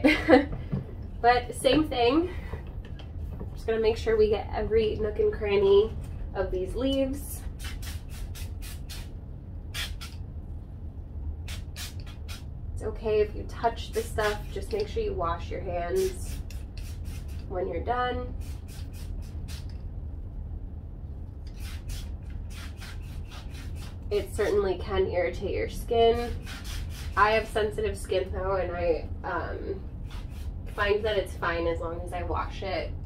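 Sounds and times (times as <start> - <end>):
spray bottle spraying: 7.4 - 9.1, 9.7 - 10.2, 11.5 - 12.5, 13.8 - 14.8, 16.0 - 17.5, 18.3 - 19.8, 21.5 - 24.0, 26.1 - 27.5, 30.0 - 30.6.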